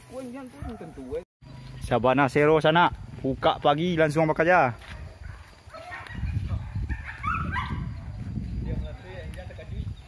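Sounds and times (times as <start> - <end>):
dogs barking and yelping: 5.0 - 8.2.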